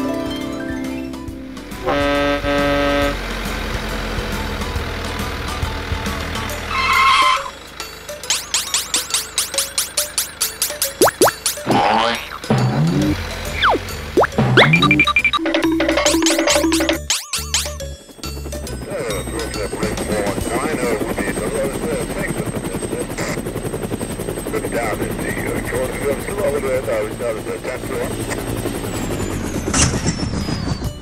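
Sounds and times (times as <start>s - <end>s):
music: 0.0s - 22.4s, 28.4s - 31.0s
cartoon helicopter rotor chop: 8.2s - 31.0s
voices: 11.6s - 13.8s, 18.8s - 23.6s, 24.5s - 28.3s.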